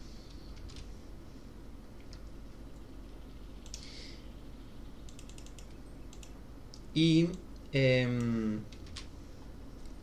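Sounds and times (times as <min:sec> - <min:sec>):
keyboard keys clicking: 0:05.1 - 0:06.4.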